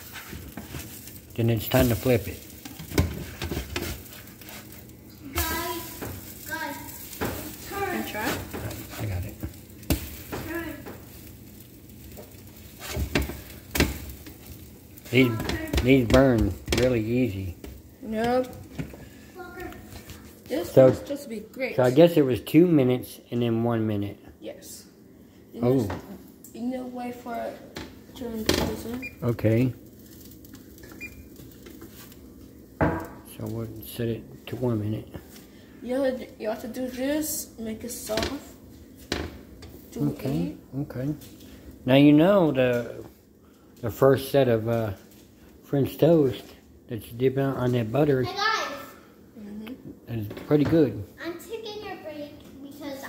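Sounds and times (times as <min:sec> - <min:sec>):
low steady background noise: 0:00.0 - 0:53.0
toast sizzling in a pan: 0:00.0 - 0:53.0.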